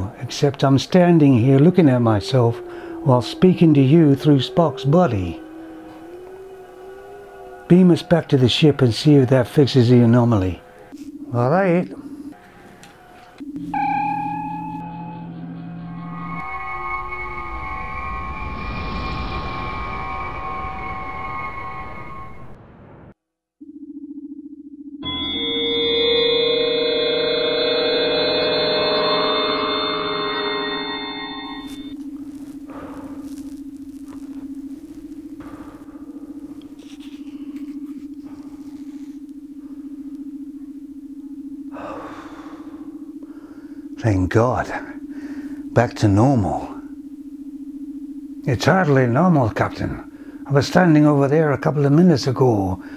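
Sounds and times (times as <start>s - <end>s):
shimmering high-tone chord: 13.6s - 22.4s, 25.0s - 32.0s.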